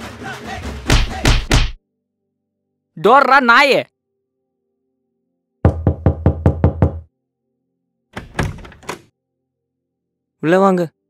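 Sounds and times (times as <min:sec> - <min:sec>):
knocking on wooden door: 0:05.7 - 0:07.1
door handle click and rattle: 0:08.2 - 0:09.1.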